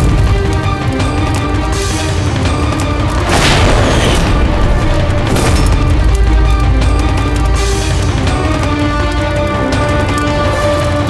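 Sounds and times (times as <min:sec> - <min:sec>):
dramatic background score: 0:00.0 - 0:11.0
heavy low drone: 0:00.0 - 0:11.0
whoosh and boom hit: 0:03.2 - 0:06.0.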